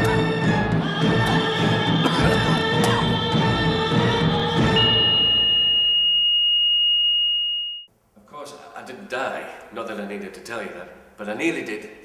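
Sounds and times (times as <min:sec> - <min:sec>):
monitor flatline alarm tone: 0:04.7 - 0:07.9.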